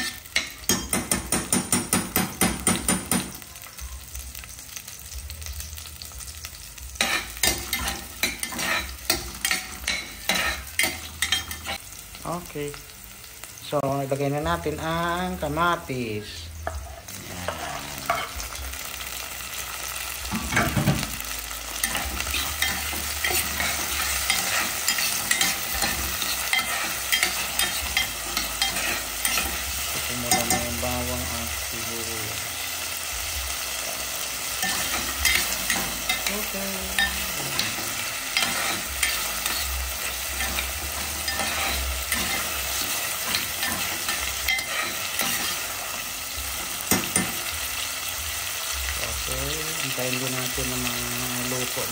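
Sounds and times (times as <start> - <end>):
vegetables sizzling in hot oil: 0.0 - 51.9
spoon stirring and scraping pot: 7.0 - 11.8, 16.6 - 18.6, 21.8 - 30.7, 34.5 - 47.5.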